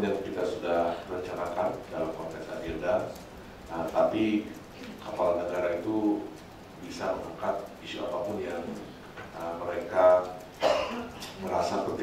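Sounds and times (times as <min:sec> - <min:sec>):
man talking into a microphone: 0:00.0 - 0:10.4, 0:11.4 - 0:12.0.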